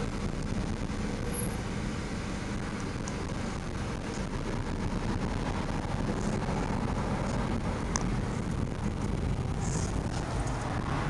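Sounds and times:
car engine rumble: 0.0s - 11.0s
road noise: 0.0s - 11.0s.

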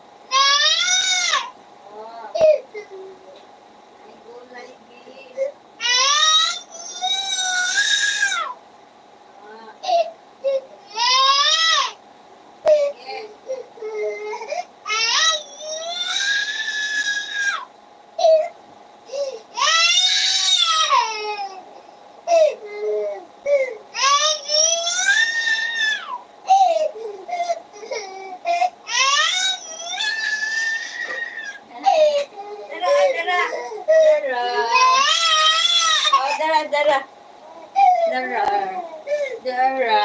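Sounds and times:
toddler wailing: 0.3s - 1.5s, 5.8s - 8.6s, 9.8s - 12.0s, 13.5s - 18.5s, 19.6s - 21.6s, 22.3s - 36.5s, 37.5s - 39.3s.

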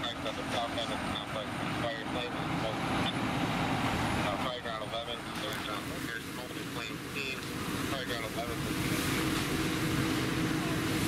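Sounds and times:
voices: 0.0s - 3.5s, 4.1s - 9.6s
water rushing from hose: 0.0s - 11.0s.

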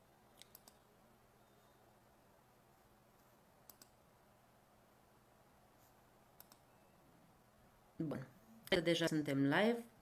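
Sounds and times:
faint low hum: 0.0s - 10.0s.

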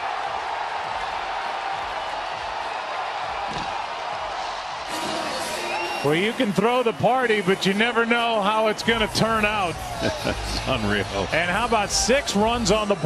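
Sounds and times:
large crowd cheering: 0.0s - 13.0s.

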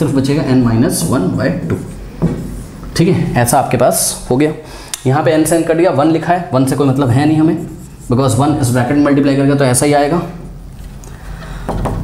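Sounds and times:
man speaking: 0.0s - 1.8s, 2.9s - 10.5s.

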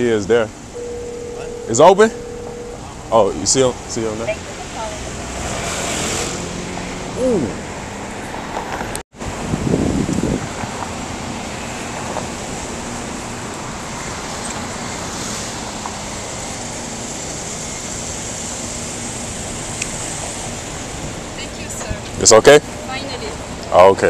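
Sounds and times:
wind and road noise: 0.0s - 24.0s.

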